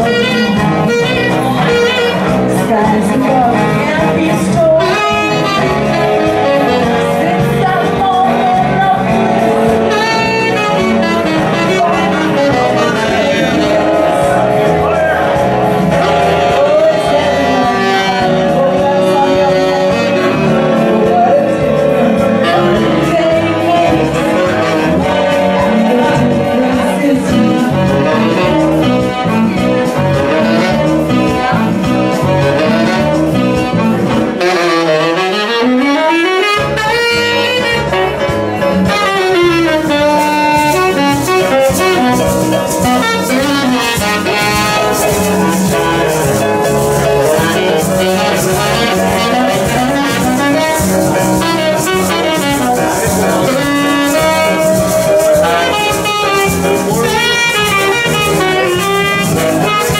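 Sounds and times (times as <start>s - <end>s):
bass guitar: 0.0s - 59.9s
keyboard: 0.0s - 59.9s
light percussion: 0.0s - 59.9s
saxophone melody: 0.0s - 59.9s.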